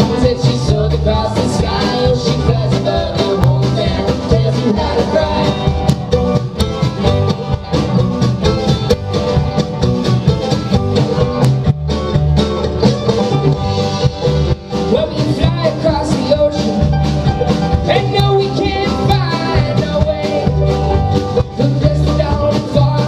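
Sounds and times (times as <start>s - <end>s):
acoustic guitar: 0.0s - 23.0s
banjo: 0.0s - 23.0s
mandolin: 0.0s - 23.0s
upright bass: 0.0s - 23.0s.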